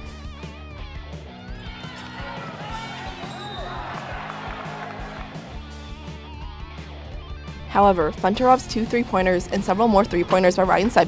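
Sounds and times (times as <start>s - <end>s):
guitar-led instrumental music: 0.0s - 11.0s.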